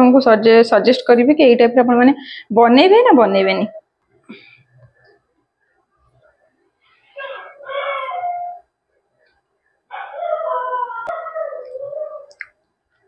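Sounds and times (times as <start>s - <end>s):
dog whining and howling: 7.1s - 8.7s, 9.9s - 12.4s.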